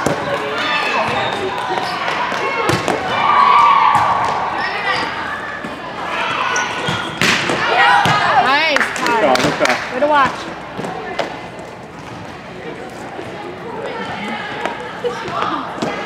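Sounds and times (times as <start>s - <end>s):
chatter of voices: 0.0s - 16.0s
volleyballs thudding on court: 1.8s - 4.4s, 6.8s - 8.6s.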